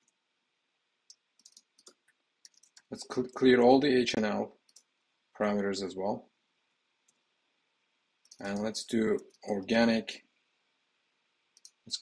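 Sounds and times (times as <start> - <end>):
computer mouse and keyboard clicks: 1.1 - 3.4, 4.6 - 4.9, 8.2 - 9.5, 11.6 - 12.0.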